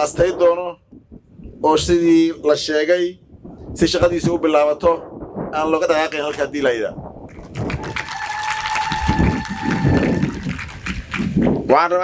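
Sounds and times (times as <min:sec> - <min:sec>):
man speaking over loudspeaker: 0:00.0 - 0:00.8, 0:01.6 - 0:03.2, 0:03.8 - 0:07.0, 0:11.7 - 0:12.0.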